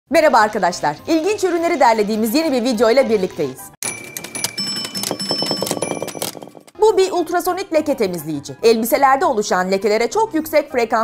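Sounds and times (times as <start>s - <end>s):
bright bell-like tones: 3.8s - 6.8s
quick run of clicks: 3.8s - 6.8s.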